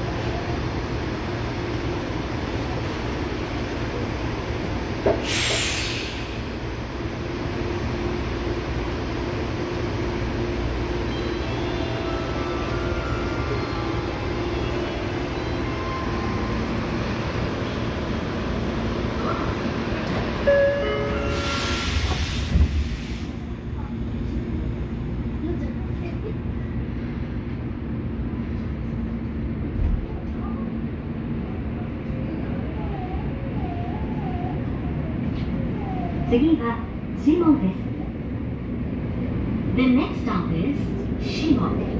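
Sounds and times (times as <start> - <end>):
train doors hissing shut: 5.0 - 6.5, 21.2 - 23.4.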